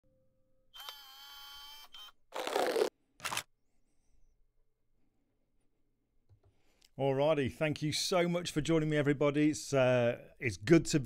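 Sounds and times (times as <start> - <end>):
short bursts of noise: 2.3 - 3.5.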